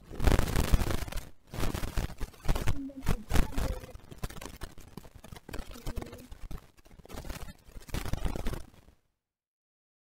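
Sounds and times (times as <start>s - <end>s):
small objects clicking and knocking: 0.0s - 9.0s.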